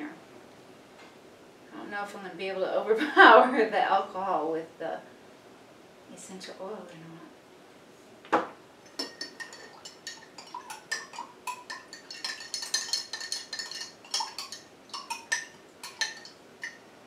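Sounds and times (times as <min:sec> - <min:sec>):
spoon clinking in glass jar: 0:08.9 - 0:16.8.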